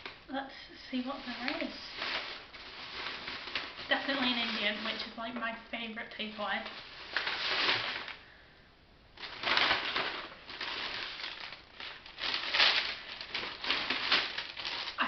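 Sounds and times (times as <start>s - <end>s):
paper bags rustling: 0.9s - 8.4s, 9.2s - 15.0s.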